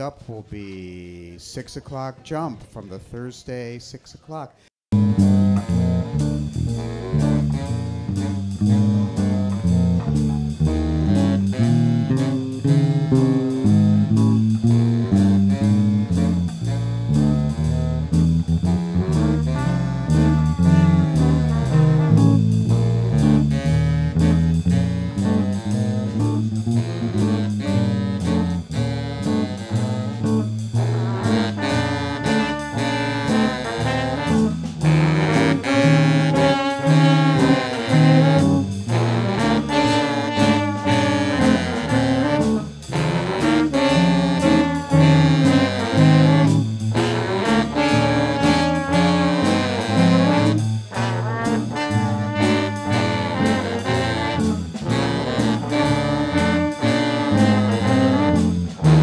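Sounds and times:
bass: 0:00.0 - 0:04.2, 0:04.9 - 0:59.0
drum kit: 0:04.9 - 0:59.0
trombone: 0:04.9 - 0:59.0
saxophone: 0:05.0 - 0:59.0.

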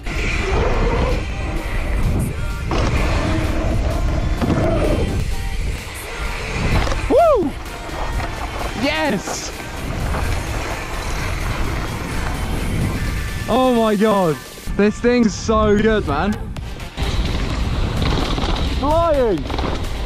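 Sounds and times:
wind on microphone: 0:00.0 - 0:08.8, 0:09.6 - 0:13.5
bike tyres rumbling: 0:00.0 - 0:14.0, 0:15.3 - 0:20.0
person whooping: 0:07.0 - 0:07.6.

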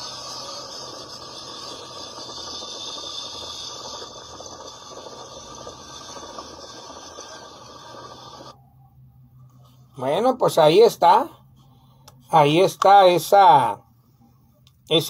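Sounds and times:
street noise through phone speaker: 0:04.8 - 0:15.0.

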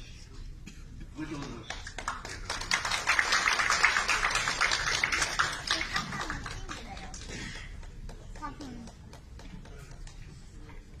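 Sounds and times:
faint murmur of voices: 0:05.1 - 0:11.0.

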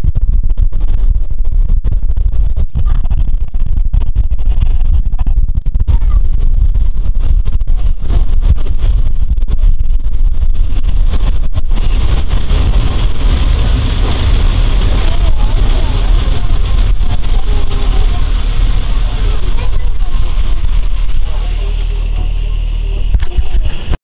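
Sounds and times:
train wheels rumbling on track: 0:11.7 - 0:23.8.

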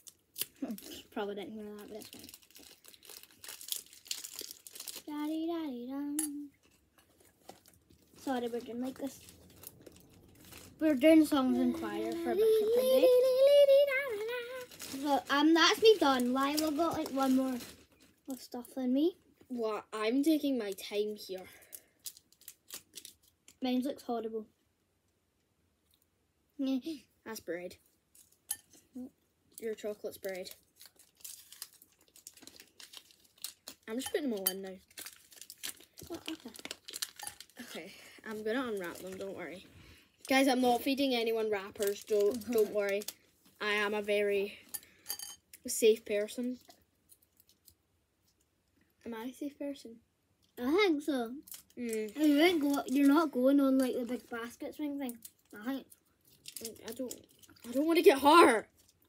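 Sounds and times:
sweet wrappers rustling: 0:00.0 - 0:23.9, 0:27.3 - 0:48.5, 0:50.6 - 0:59.0.

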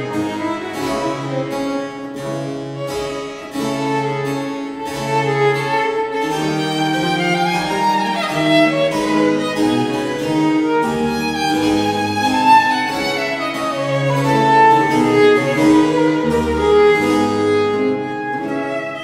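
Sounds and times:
harpsichord: 0:00.0 - 0:19.0
solo violin melody: 0:00.0 - 0:19.0.

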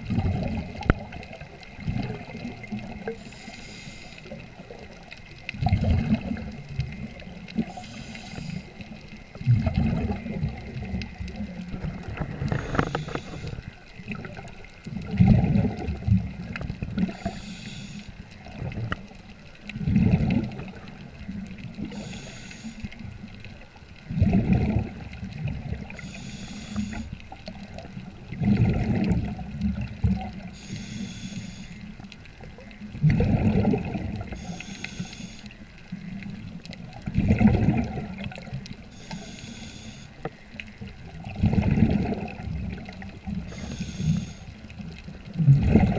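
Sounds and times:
underwater breathing surge and bubbles: 0:00.0 - 0:45.9.

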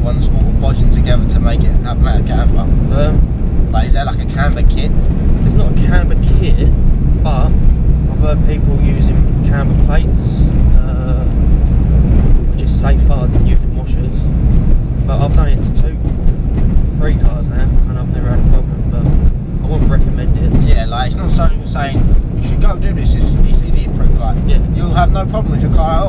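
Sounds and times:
voices talking: 0:00.0 - 0:11.4, 0:12.5 - 0:14.3, 0:15.1 - 0:16.3, 0:16.9 - 0:26.0
car engine and road rumble: 0:00.0 - 0:26.0.

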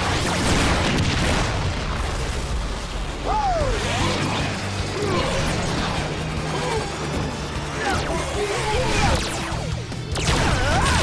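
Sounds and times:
dramatic music score: 0:00.0 - 0:11.0
swooping energy blast zaps: 0:03.0 - 0:11.0.

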